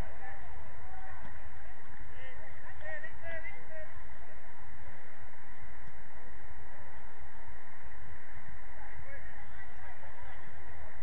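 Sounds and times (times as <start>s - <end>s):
distant footballers shouting: 0.0s - 11.0s
steady low rumble: 0.0s - 11.0s.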